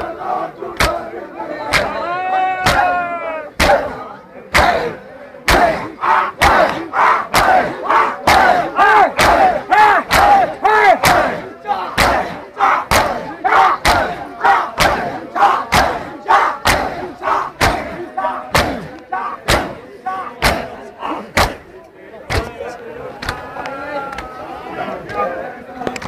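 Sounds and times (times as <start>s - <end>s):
crowd shouting in rhythm: 0.0s - 26.0s
crowd slapping chests: 0.0s - 26.0s.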